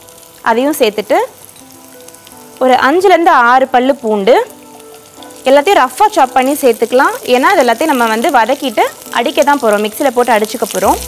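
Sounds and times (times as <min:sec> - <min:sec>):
oil frying in a pan: 0:00.0 - 0:11.0.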